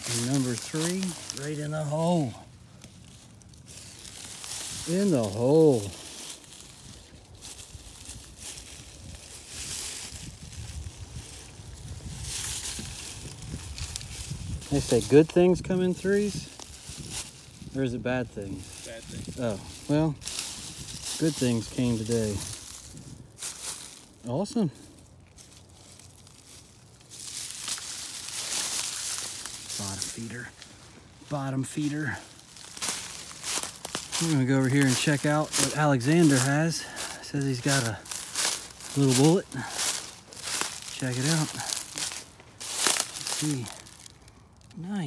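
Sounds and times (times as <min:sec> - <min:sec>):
footsteps crunching through dry leaves: 0:00.0 - 0:45.0
wind rumble on microphone: 0:06.6 - 0:23.5.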